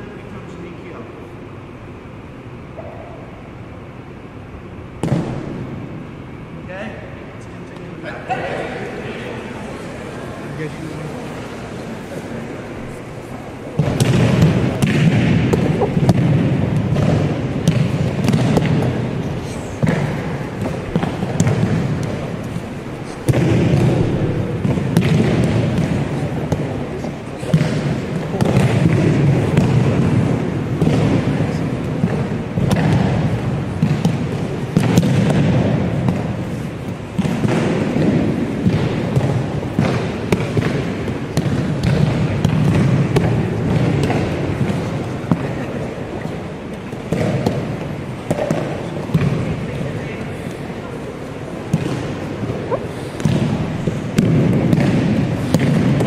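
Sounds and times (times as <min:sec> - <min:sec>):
murmur of voices: 0:05.5 - 0:56.0.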